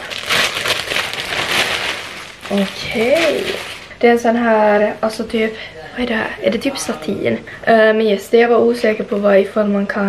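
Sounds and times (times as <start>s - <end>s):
plastic bag crinkling and tearing: 0.0s - 4.0s.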